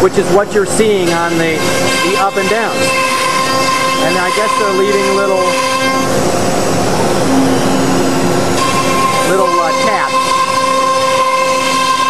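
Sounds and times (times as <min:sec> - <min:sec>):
router spindle whine: 0:01.6 - 0:12.0.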